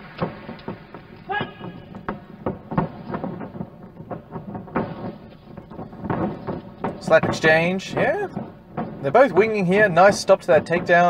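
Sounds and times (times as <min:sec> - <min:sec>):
sharp smacks and knocks: 0:00.0 - 0:11.0.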